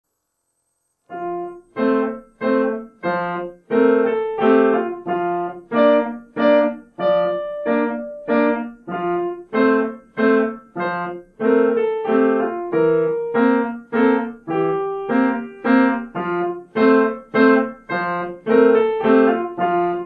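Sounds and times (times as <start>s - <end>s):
upright piano notes and chords: 1.1s - 20.0s.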